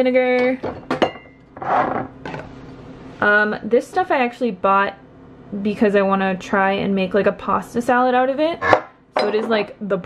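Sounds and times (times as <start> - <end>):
glass bottles clinking: 0.7 - 1.4, 8.6 - 9.6.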